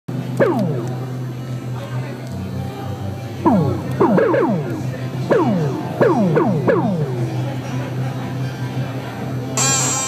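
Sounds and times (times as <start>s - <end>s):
synthesizer downward pitch sweeps: 0.4s - 1.1s, 3.4s - 7.7s
steady low synth drone: 0.4s - 1.4s, 2.9s - 8.0s.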